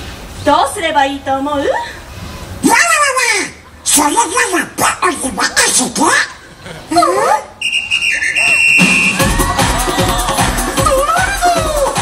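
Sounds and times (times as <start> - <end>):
dance music with heavy bass beat: 8.9 - 12.0
high voice exclaiming: 10.8 - 12.0.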